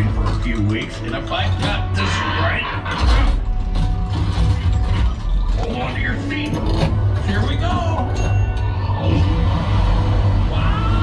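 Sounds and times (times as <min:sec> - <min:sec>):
music playing: 0:00.0 - 0:11.0
deep rumble: 0:02.6 - 0:11.0.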